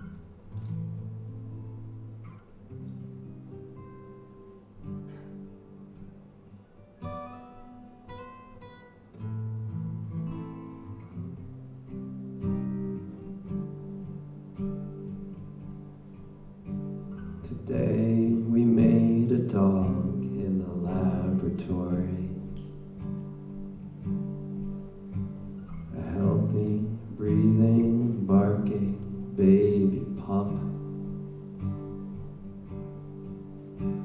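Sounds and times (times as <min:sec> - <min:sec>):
fingerpicked acoustic guitar: 0:00.0 - 0:34.0.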